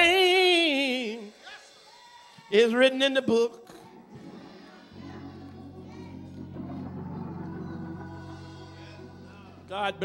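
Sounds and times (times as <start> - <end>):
sustained keyboard chords: 4.1 - 10.0.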